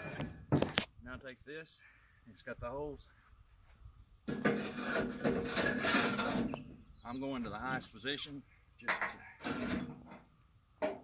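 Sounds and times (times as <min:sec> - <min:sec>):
metal-on-metal scrape: 0:04.3 - 0:06.8, 0:08.9 - 0:10.3.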